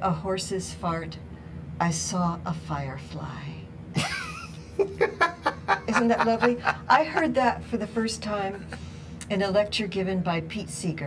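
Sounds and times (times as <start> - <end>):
person laughing: 4.0 - 7.3.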